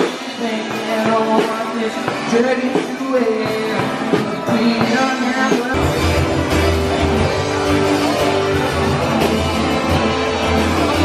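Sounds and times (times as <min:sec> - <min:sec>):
person singing: 0:00.0 - 0:11.0
steady drum beat: 0:00.0 - 0:11.0
strummed guitar: 0:00.0 - 0:11.0.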